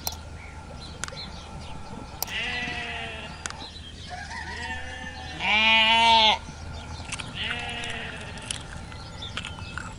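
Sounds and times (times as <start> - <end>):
sharp clicks: 0.0 - 0.2, 2.2 - 2.4
sheep bleating: 2.3 - 3.4, 4.5 - 6.4, 7.4 - 8.5.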